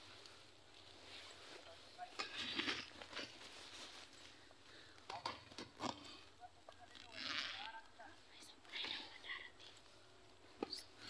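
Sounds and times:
person whispering: 6.1 - 11.0.

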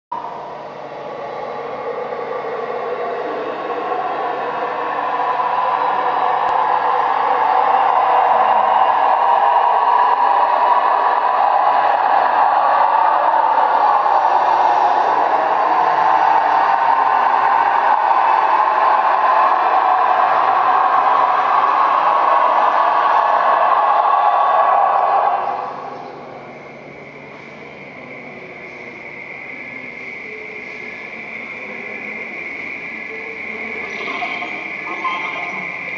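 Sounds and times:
dense electronic noise: 2.6 - 35.9.

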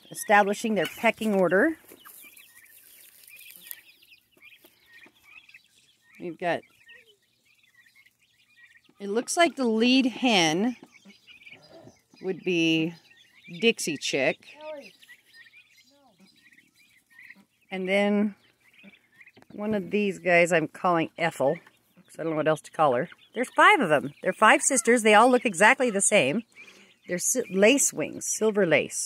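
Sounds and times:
young chickens peeping and clucking: 0.0 - 29.0.

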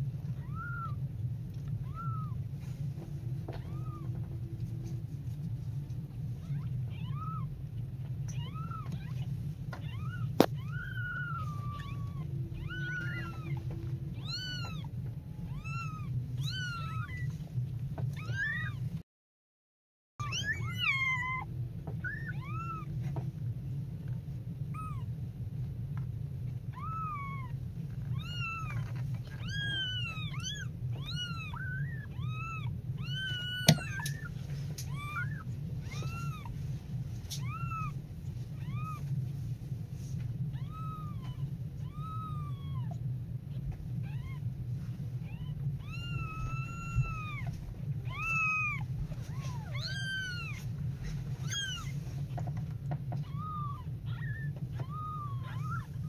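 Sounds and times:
low hum: 0.0 - 19.0, 20.2 - 56.0
kittens mewing: 0.2 - 5.0, 6.3 - 19.0, 20.2 - 23.2, 24.6 - 25.2, 26.5 - 36.6, 37.2 - 39.2, 40.4 - 44.6, 45.2 - 56.0.

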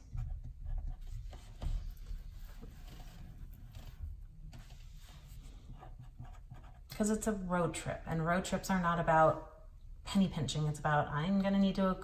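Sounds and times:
felt-tip marker writing on paper: 5.7 - 6.9.

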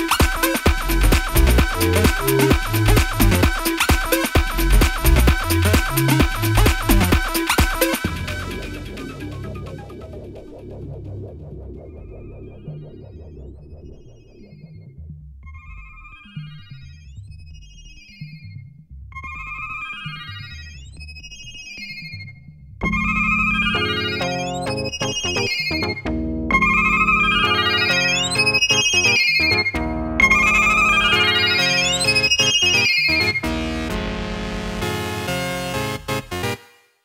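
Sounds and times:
high synth melody: 0.0 - 14.4, 22.8 - 36.6
electro house music: 0.0 - 16.4, 22.8 - 36.6
synth bass line: 0.0 - 18.2, 22.8 - 36.4.

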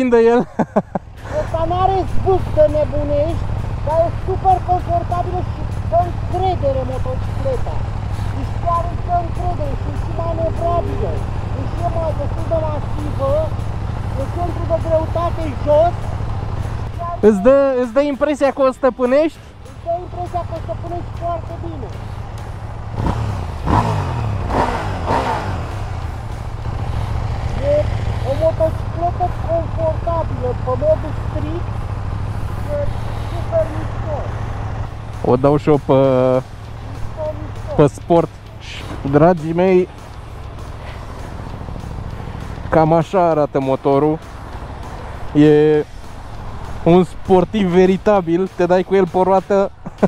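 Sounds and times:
man speaking: 0.0 - 16.1, 16.7 - 22.1, 27.4 - 31.7, 32.4 - 40.0, 42.4 - 44.3, 45.2 - 45.9, 46.6 - 50.0
motorcycle engines idling: 0.0 - 50.0.

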